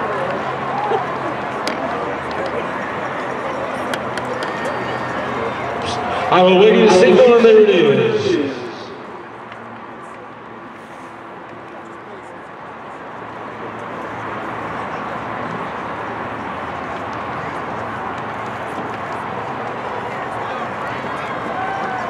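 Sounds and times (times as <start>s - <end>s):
crowd murmur: 0.0s - 22.0s.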